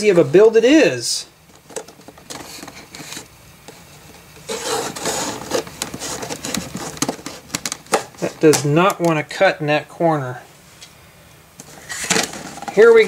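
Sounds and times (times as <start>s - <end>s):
blade scraping through tape: 4.5s - 7.4s.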